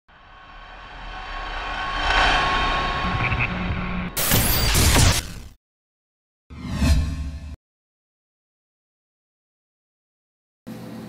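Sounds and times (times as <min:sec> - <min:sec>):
riser sound effect: 0:00.1 - 0:05.6, 0:06.5 - 0:07.6.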